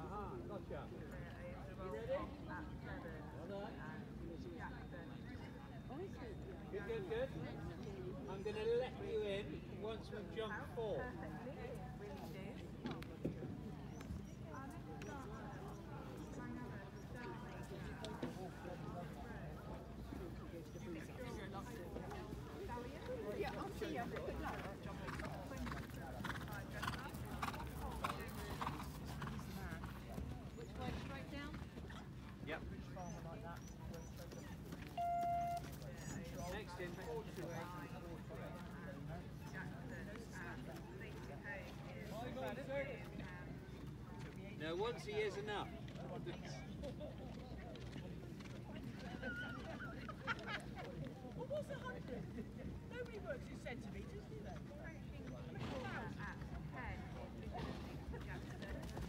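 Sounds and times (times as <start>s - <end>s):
murmur of onlookers: 0.0s - 59.0s
people talking: 10.5s - 31.8s, 32.7s - 59.0s
horse hooves cantering on grass: 20.3s - 44.4s, 55.5s - 59.0s.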